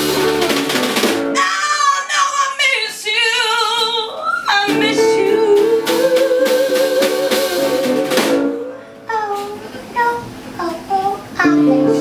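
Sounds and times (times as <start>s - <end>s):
woman singing: 1.4s - 12.0s.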